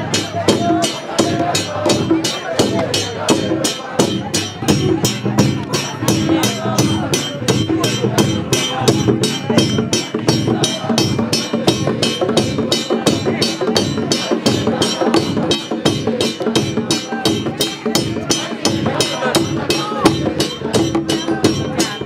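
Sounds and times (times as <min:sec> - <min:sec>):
congregation singing: 0:00.0 - 0:04.6, 0:10.1 - 0:22.0
hand cymbals clashing: 0:00.0 - 0:22.0.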